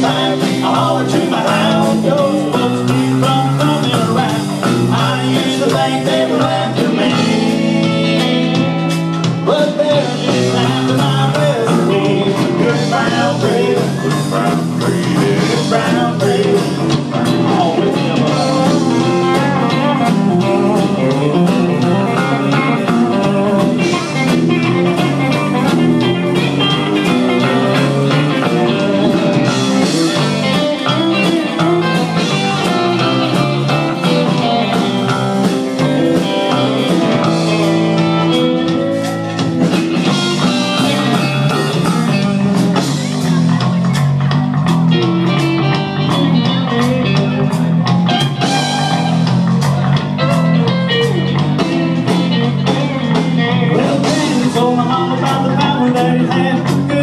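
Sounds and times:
blues-rock band playing: 0.0 - 57.0.

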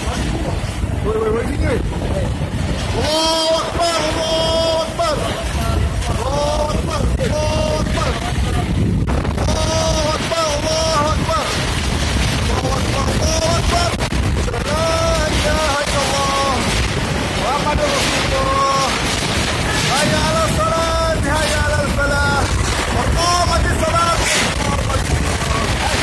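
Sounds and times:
strong wind rushing: 0.0 - 26.0
flying debris: 1.8 - 26.0.

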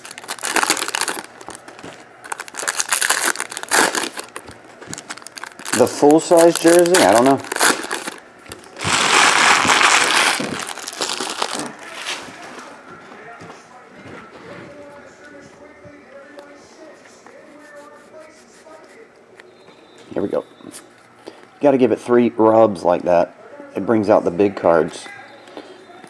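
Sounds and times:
foil wrapper crinkling and tearing: 0.0 - 12.2
handling of card stack: 0.0 - 12.7
faint music or voice: 10.7 - 26.0.

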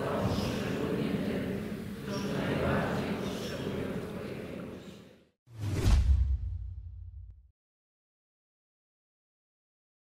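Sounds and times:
deep low boom: 5.7 - 7.4.

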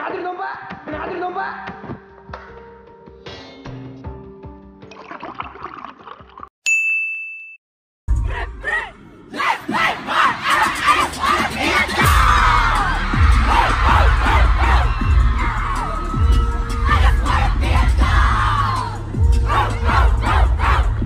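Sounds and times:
bell-like ding: 6.6 - 7.6
crowd screaming and cheering: 8.3 - 21.0
bass-heavy pop music: 10.4 - 21.0.

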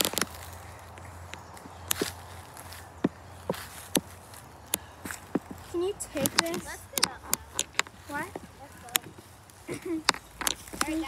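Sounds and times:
footsteps on dry leaves and twigs: 0.0 - 11.0
twig snapping click: 6.2 - 7.9.

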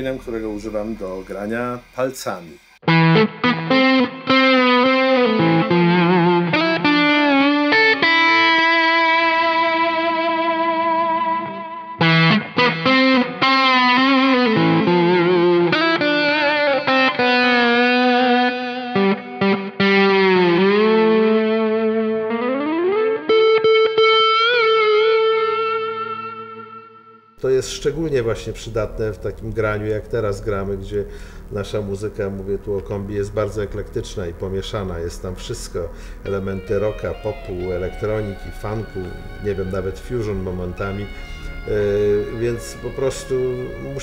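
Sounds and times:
overdriven electric guitar lead: 2.8 - 27.4, 35.2 - 44.0.

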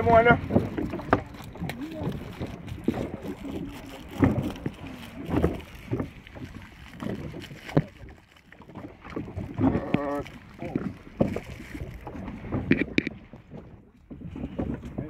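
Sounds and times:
paddle knocks and splashes: 0.0 - 15.0
water noise: 0.0 - 15.0
wind: 0.0 - 15.0.

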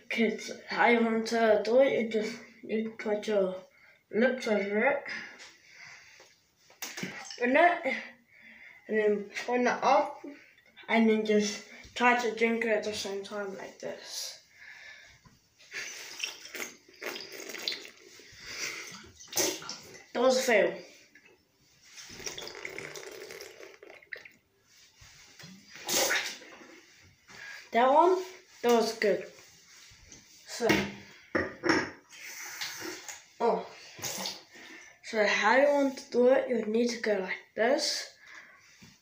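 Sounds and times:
slurping from bottle: 15.7 - 20.1, 22.0 - 24.4, 25.8 - 26.6
water swirling in glass bottle: 21.9 - 24.4.

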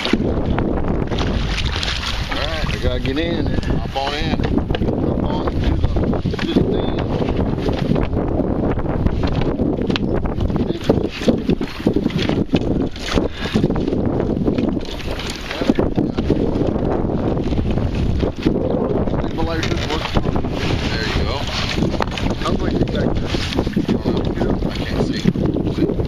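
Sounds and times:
knocks and rustling in kayak: 0.0 - 26.0
wind rumbling on microphone: 0.0 - 26.0.

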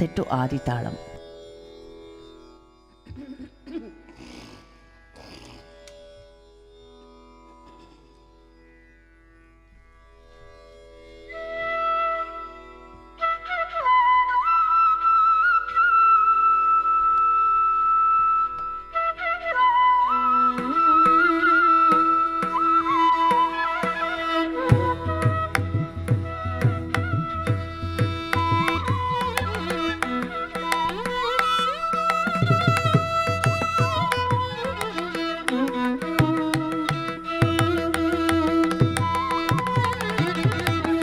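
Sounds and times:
tanpura drone: 0.0 - 41.0
bamboo flute holding long notes: 11.3 - 41.0.

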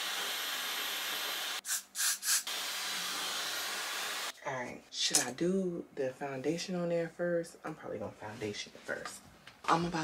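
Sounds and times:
hair dryer blowing: 0.0 - 1.6
short hissing bursts: 1.6 - 2.5.

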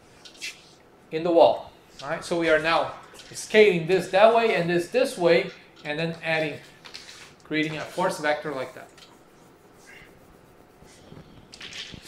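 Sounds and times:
chalk scratching on blackboard: 7.9 - 11.3.

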